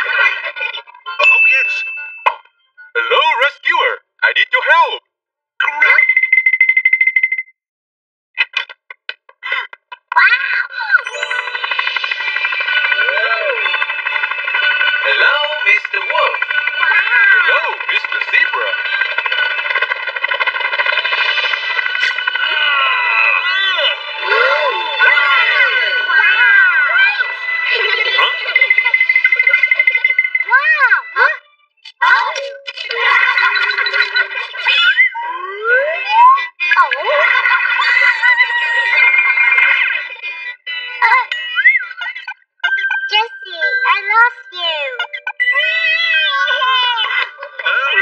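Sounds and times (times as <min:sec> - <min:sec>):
high-pitched cartoon voices: 0:09.4 - 0:11.6, 0:15.1 - 0:18.8, 0:22.4 - 0:48.0
background music: 0:11.0 - 0:48.0.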